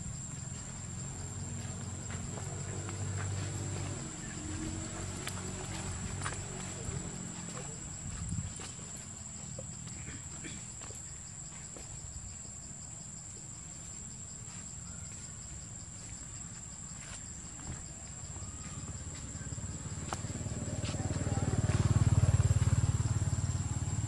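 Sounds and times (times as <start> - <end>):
insects droning: 0.0 - 24.0.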